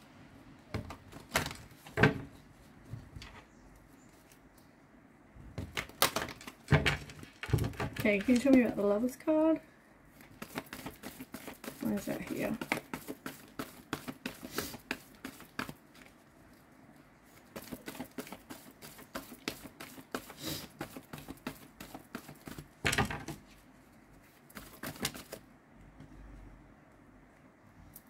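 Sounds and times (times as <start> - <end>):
cards being shuffled: 10.1 - 16.2, 17.3 - 22.7, 24.3 - 25.4.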